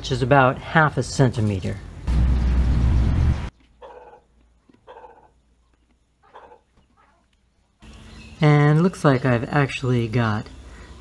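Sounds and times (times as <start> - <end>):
loud rushing noise with low rumble: 2.0 - 3.5.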